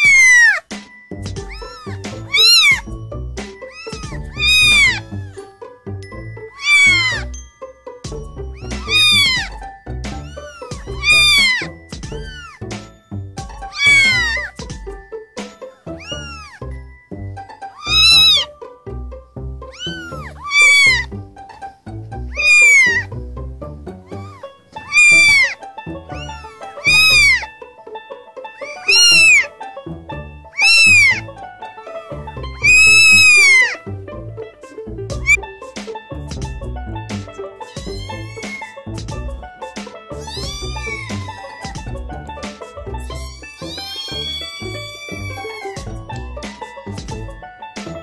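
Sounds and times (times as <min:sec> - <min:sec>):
kittens meowing: 0:00.0 - 0:00.7, 0:01.3 - 0:03.0, 0:03.6 - 0:05.5, 0:06.4 - 0:07.3, 0:08.5 - 0:14.9, 0:15.6 - 0:16.7, 0:17.6 - 0:18.5, 0:19.7 - 0:21.2, 0:22.3 - 0:23.1, 0:24.0 - 0:27.6, 0:28.6 - 0:29.5, 0:30.5 - 0:31.3, 0:32.6 - 0:33.9, 0:34.6 - 0:35.5, 0:36.4 - 0:47.4
background music: 0:00.0 - 0:48.0.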